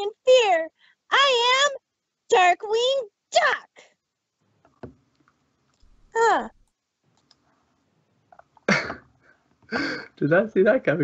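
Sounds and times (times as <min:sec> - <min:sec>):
person's wordless exclamation: 0:06.2 - 0:06.5.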